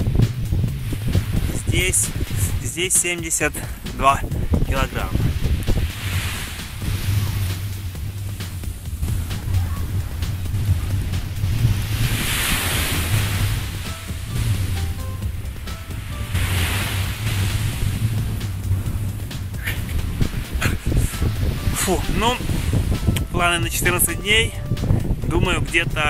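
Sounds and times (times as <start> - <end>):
background music: 0.0 - 26.0
surf washing onto beach: 0.0 - 26.0
wind rumbling on microphone: 0.0 - 26.0.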